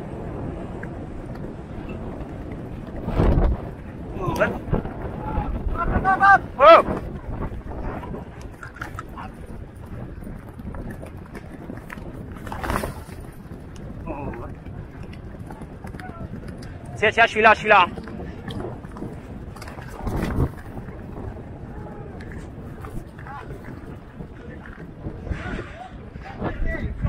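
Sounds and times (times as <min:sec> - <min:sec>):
running hoofbeats: 0:00.2 - 0:27.0.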